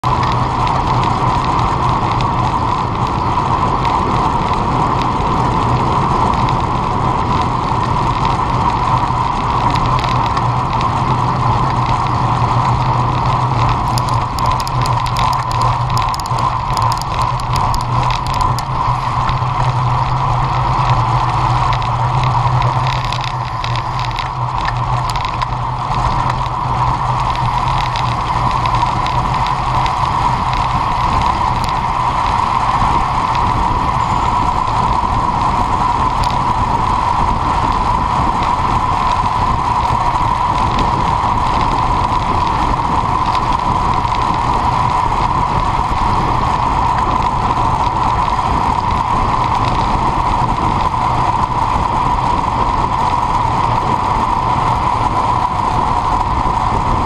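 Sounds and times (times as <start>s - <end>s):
bicycle clicking: 0.0s - 57.0s
road noise: 0.0s - 57.0s
wind rush: 0.0s - 57.0s.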